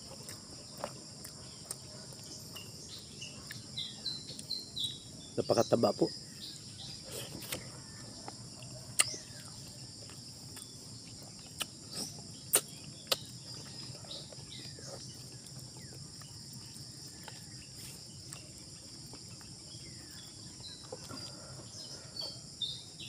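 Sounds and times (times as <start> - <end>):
mouth smacks and clicks eating: 0.0 - 4.6, 7.1 - 21.4
high-pitched insect chorus: 0.0 - 23.0.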